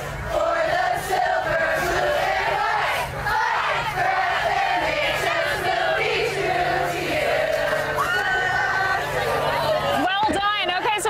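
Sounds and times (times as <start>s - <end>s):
crowd yelling and chanting: 0.0s - 10.8s.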